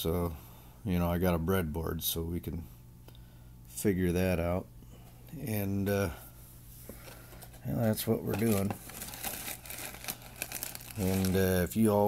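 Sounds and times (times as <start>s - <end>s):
wrapper crinkling: 7.1s - 12.0s.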